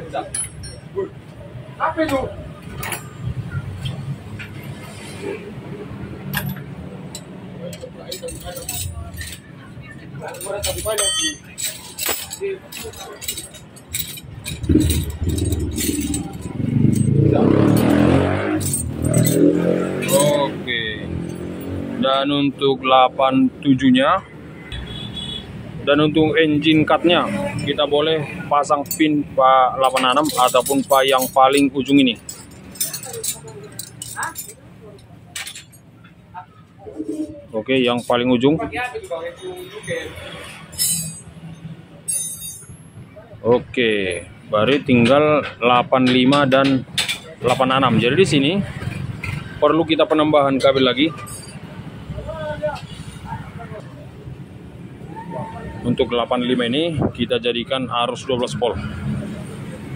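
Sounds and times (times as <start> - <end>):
wires and connector rattling: 10.4 - 17.2.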